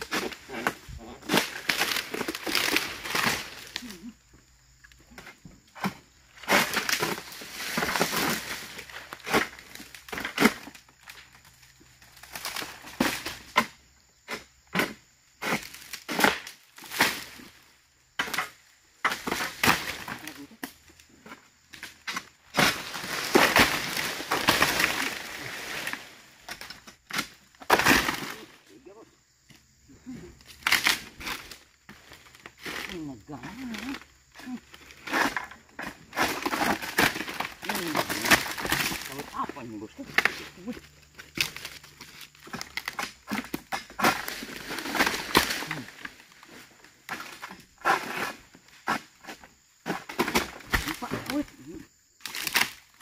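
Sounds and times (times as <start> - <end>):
fronds cracking when cut: 0.0 - 3.9, 21.7 - 28.6, 30.4 - 34.0, 35.0 - 46.4, 52.2 - 53.0
fronds crashing through undergrowth: 22.6 - 26.6, 27.2 - 28.6, 36.1 - 43.1, 44.1 - 46.4, 52.2 - 53.0.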